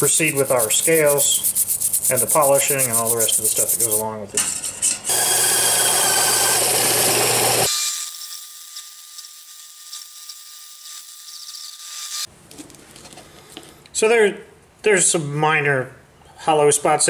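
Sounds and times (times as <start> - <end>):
bandsaw cutting plastic rod: 5.1 - 10.4.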